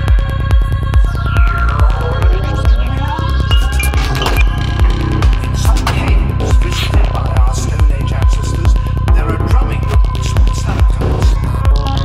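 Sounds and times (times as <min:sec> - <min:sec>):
psytrance music: 0:00.0 - 0:12.0.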